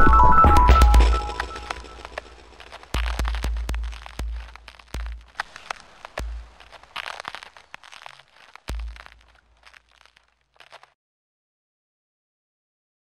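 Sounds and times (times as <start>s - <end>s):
sharp electronic clicks and crackles: 0.0s - 10.9s
deep bass thumps: 0.6s - 7.2s.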